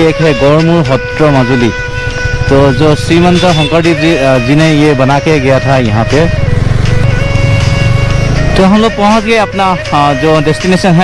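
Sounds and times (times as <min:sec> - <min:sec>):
background music: 0:00.0 - 0:11.0
motorcycle engine pulsing: 0:01.4 - 0:09.2.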